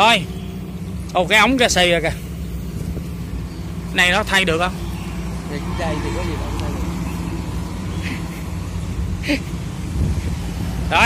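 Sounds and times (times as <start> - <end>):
engine idling: 0.0 - 11.0.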